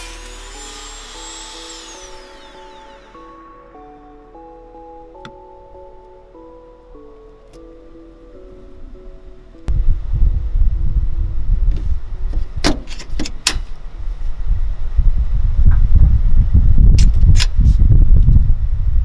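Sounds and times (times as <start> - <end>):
low rumble: 0.0 - 12.7, 13.8 - 19.0.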